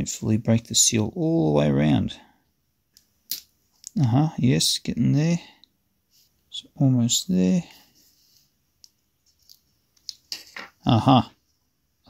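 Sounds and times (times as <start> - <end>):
person speaking: 0.0 - 2.4, 3.8 - 5.7, 6.5 - 8.1, 10.1 - 11.4.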